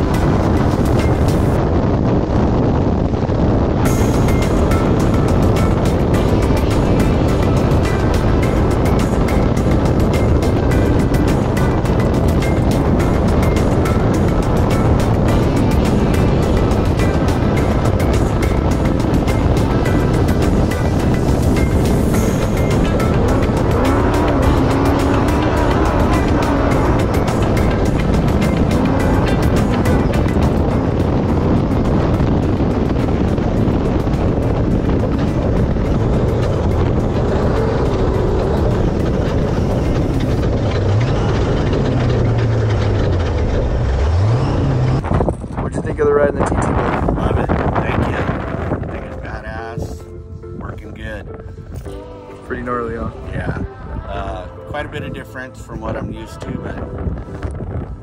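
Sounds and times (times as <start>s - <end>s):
buggy engine driven hard: 0.0s - 58.0s
music: 0.0s - 58.0s.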